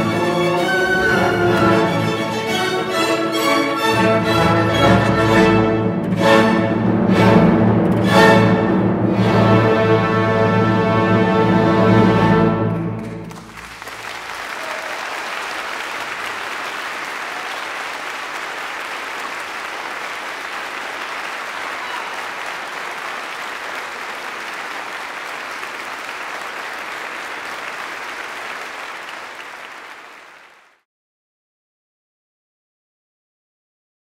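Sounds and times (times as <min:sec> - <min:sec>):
audience applauding: 0:00.0 - 0:03.8, 0:13.0 - 0:30.8.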